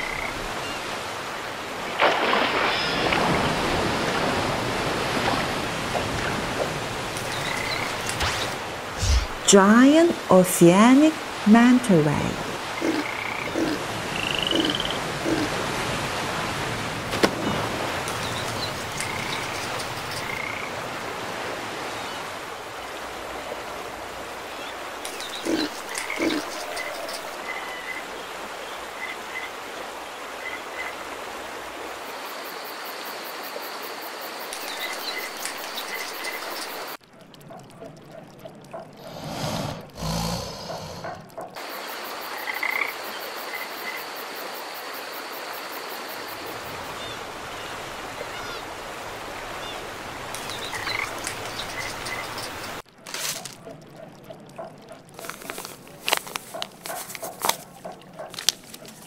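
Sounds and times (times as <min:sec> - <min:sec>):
frogs croaking: 0:00.0 - 0:04.6, 0:05.3 - 0:09.0, 0:12.2 - 0:16.2, 0:17.3 - 0:21.1, 0:21.8 - 0:59.0
sea waves: 0:00.0 - 0:59.0
crickets chirping: 0:07.2 - 0:08.6, 0:12.4 - 0:15.7, 0:31.9 - 0:37.0, 0:40.1 - 0:47.0.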